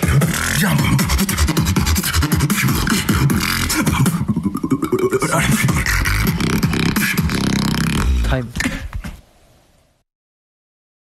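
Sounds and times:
beatboxing: 0.0 - 9.1.

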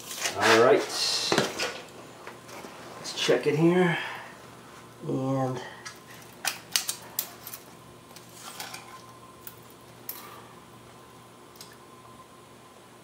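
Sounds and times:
faint shop hum: 0.0 - 13.0.

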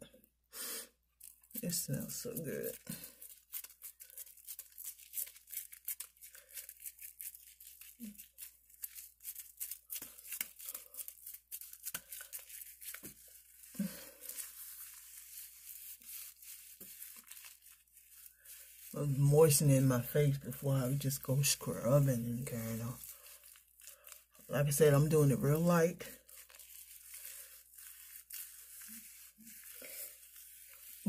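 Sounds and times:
washcloth rubbing on face: 0.7 - 31.0.

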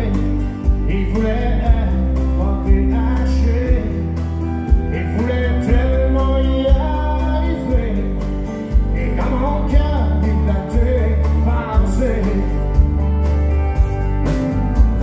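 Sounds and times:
man singing: 0.0 - 13.0
live country band playing: 0.0 - 15.0.

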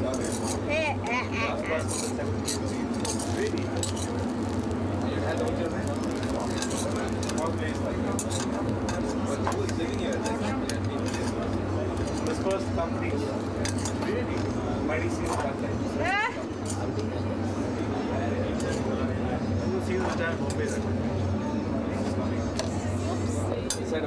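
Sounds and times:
murmur of voices: 0.0 - 24.0.

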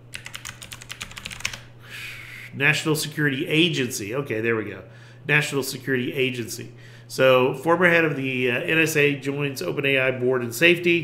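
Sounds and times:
keyboard typing: 0.1 - 1.6.

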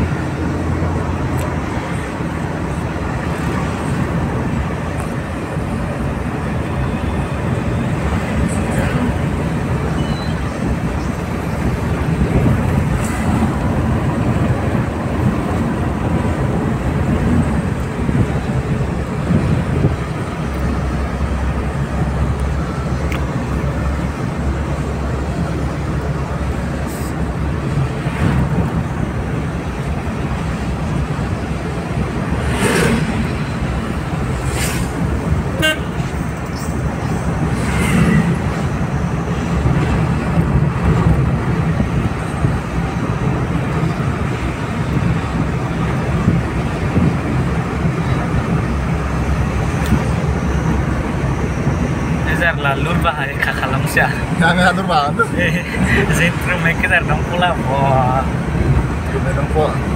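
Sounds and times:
vehicle road and engine rumble: 0.0 - 59.9
car horn toots: 35.5 - 36.1.

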